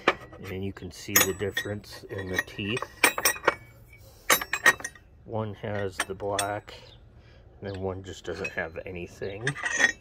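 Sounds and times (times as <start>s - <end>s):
steel wrenches clinking: 0.0s - 6.9s, 7.7s - 10.0s.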